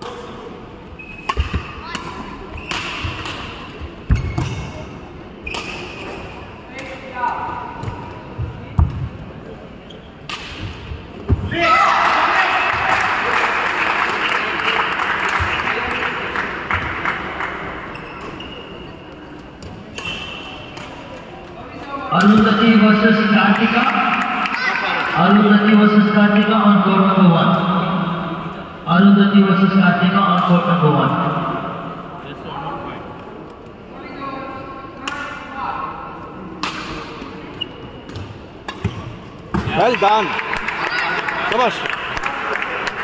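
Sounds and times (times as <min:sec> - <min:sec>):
spectators cheering: 0:11.5 - 0:15.5.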